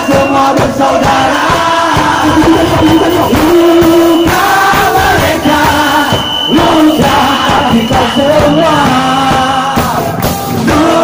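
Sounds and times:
loud singing with held notes: 0.0 - 11.0
pounding drums: 0.0 - 11.0
punk band playing live: 0.0 - 11.0.

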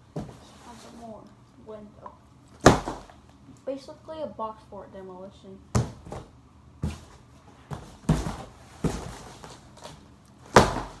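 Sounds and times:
cardboard box being struck: 2.6 - 3.1, 10.5 - 11.0.

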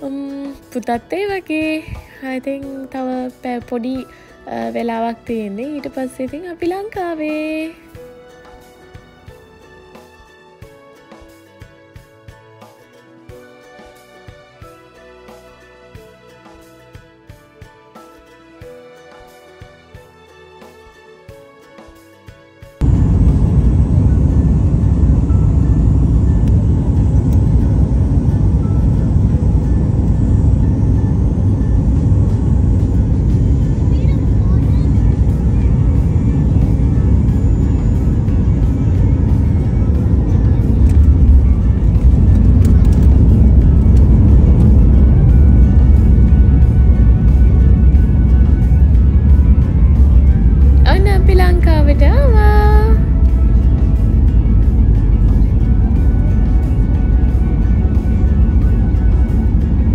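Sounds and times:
airliner cabin rumble: 22.8 - 59.9.

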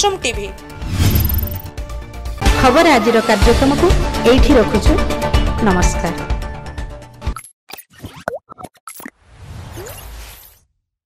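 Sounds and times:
noisy whoosh: 0.8 - 1.7
cartoon pops and plops: 7.7 - 9.1.

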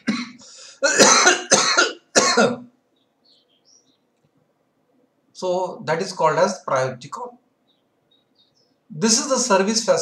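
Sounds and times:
man coughing harshly: 0.0 - 2.7.

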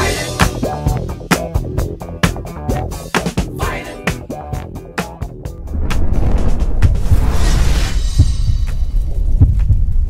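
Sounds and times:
deep bass heartbeat thuds: 5.5 - 10.0
low rumble: 5.5 - 10.0.

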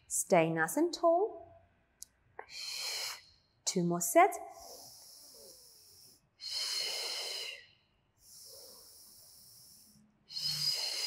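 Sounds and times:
woman breathing: 2.4 - 3.5, 4.5 - 11.0.

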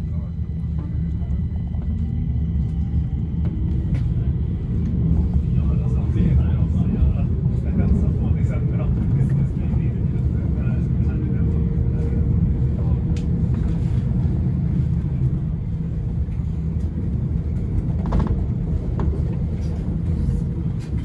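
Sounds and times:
metro train wheels rumbling: 0.0 - 21.0.

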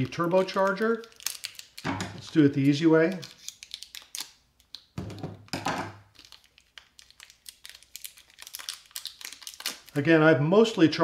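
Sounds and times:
paper crinkling: 0.0 - 4.9, 6.1 - 10.0.

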